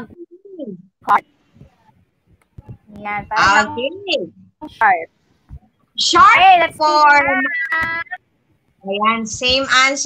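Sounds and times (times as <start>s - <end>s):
person speaking: 2.6s - 5.1s.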